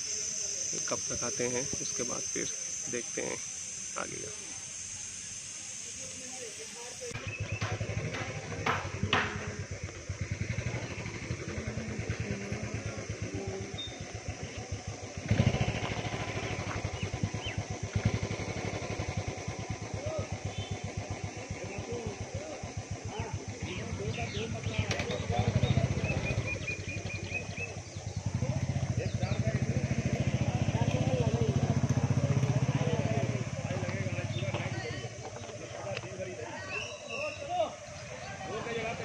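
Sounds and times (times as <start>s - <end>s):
engine running steadily: 0.0s - 36.9s
birds chirping: 0.0s - 39.0s.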